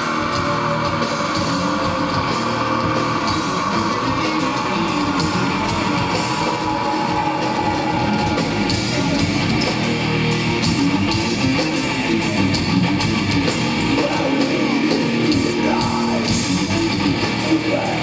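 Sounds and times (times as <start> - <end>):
distorted electric guitars: 0.0 - 18.0
drum kit with cymbal hits: 0.0 - 18.0.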